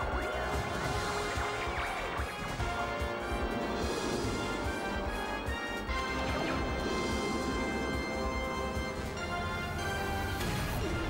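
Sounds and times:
game show theme music: 0:00.0 - 0:11.0
synthesizer chords with sweeps: 0:00.0 - 0:11.0
pulsing low beat: 0:01.8 - 0:11.0.

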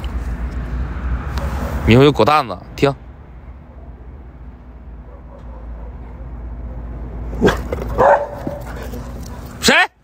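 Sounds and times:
dog barking: 0:05.0 - 0:09.5.

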